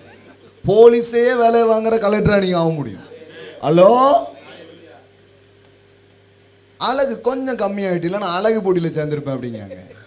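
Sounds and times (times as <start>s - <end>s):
man preaching into microphone: 0.6s - 4.4s, 6.8s - 9.8s.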